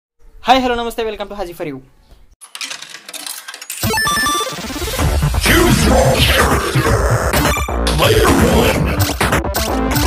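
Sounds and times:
electronic intro music: 0:03.8 - 0:08.2.

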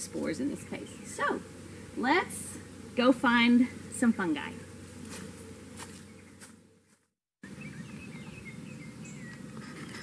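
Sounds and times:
outdoor ambience: 0:00.0 - 0:10.0.

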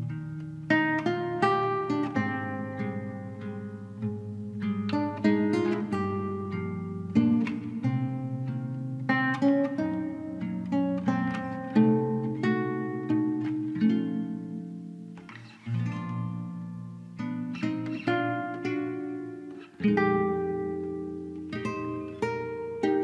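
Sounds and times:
plucked string instrument music: 0:00.0 - 0:23.0.

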